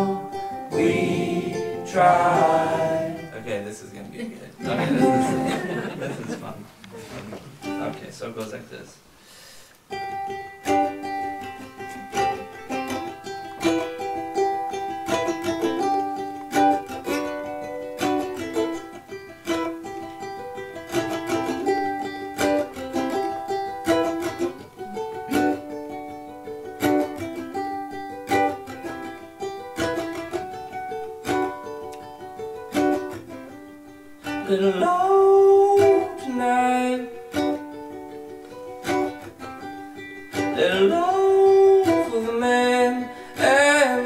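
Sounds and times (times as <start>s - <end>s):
ukulele picked melody: 0.0s - 8.5s, 9.8s - 44.0s.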